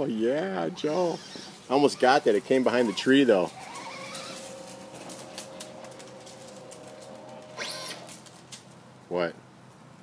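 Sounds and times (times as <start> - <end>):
electric motor whine: 3.5 - 8.4.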